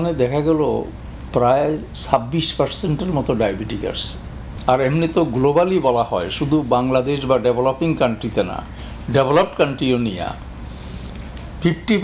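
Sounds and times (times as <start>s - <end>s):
man speaking: 0.0s - 10.4s, 11.6s - 12.0s
steady low hum: 0.0s - 12.0s.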